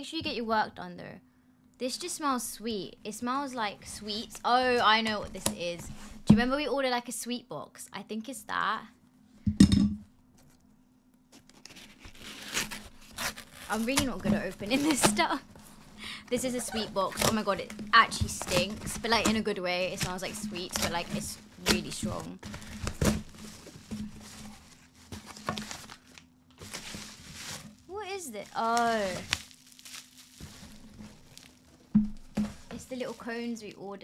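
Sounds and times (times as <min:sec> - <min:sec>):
paper and cardboard rustling and tearing: 0:11.3 - 0:34.0
sharp knocks: 0:31.9 - 0:32.7.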